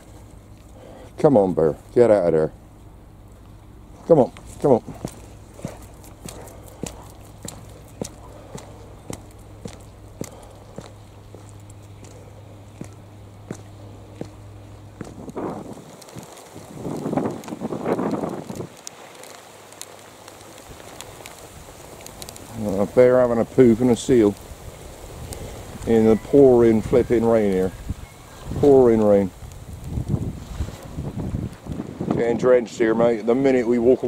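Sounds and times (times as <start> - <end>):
low steady rumble: 0.0 - 33.8
footsteps on wet concrete: 4.0 - 22.9.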